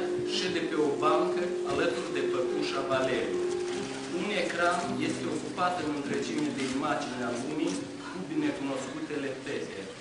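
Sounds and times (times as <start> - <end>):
person speaking on stage: 0.0 - 3.5, 4.1 - 10.0.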